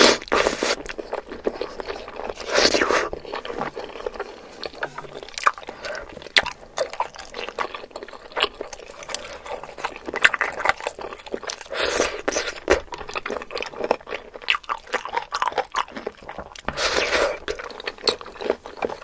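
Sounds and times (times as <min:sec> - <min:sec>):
slurping noodles: 0:00.0 - 0:06.7, 0:16.5 - 0:17.6
chewing with wet mouth clicks: 0:00.0 - 0:19.0.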